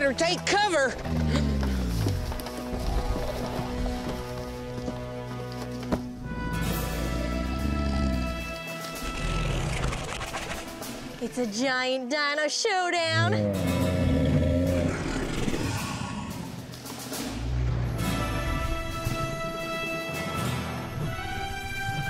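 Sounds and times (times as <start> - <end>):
background music score: 0.0 - 22.0
deep dinosaur growls: 6.2 - 10.2, 13.1 - 19.4.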